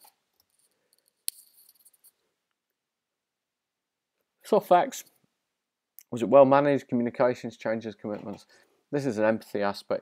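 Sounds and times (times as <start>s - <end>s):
faint high rattle: 0.0s - 2.3s.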